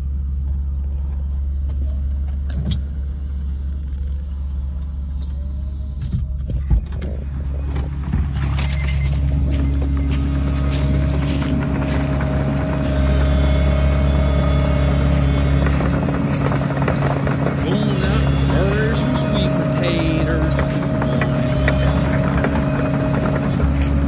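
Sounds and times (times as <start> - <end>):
diesel engine droning: 0.0 - 24.0.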